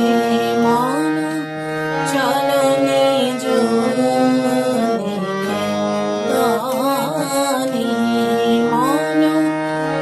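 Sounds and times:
harmonium melody: 0.0 - 10.0
person singing: 0.0 - 10.0.

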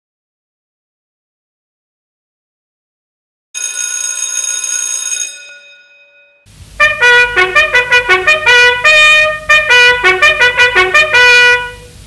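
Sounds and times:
bell-like ringing: 3.6 - 6.5
brass music with trumpet: 6.8 - 12.0.

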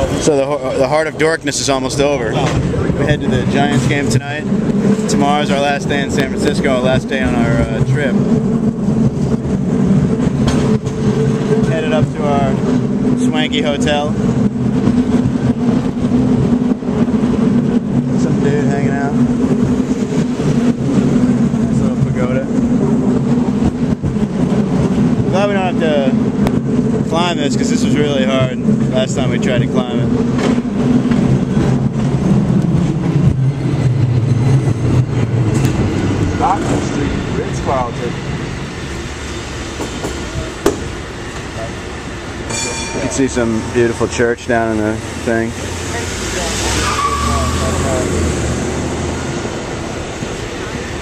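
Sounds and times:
cable car rumbling: 0.0 - 51.0.

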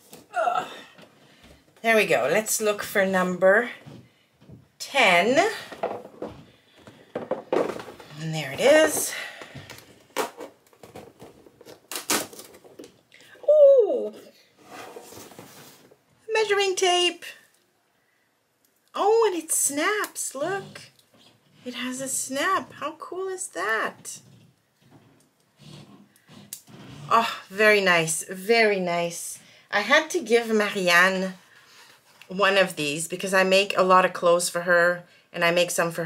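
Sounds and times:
paper and cardboard tearing: 11.6 - 12.8.

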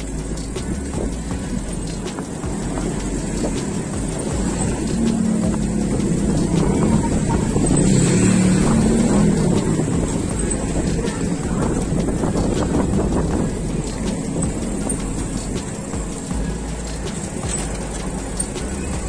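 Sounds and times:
street traffic rumble: 0.0 - 19.0
truck engine humming: 0.0 - 19.0.

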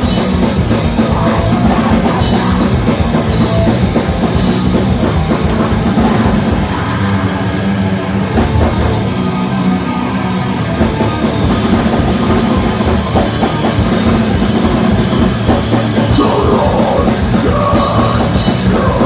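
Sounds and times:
bass guitar: 0.0 - 19.0
distorted electric guitar: 0.0 - 19.0
drum kit: 0.0 - 19.0.

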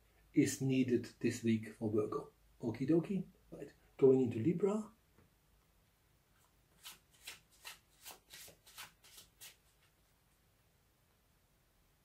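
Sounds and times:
cards being shuffled by hand: 6.8 - 10.0.

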